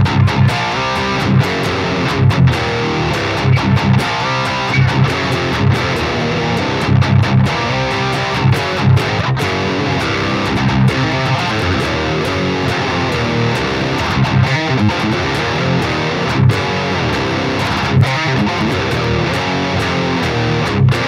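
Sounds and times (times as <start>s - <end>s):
electric guitar riffing: 0.0s - 21.0s.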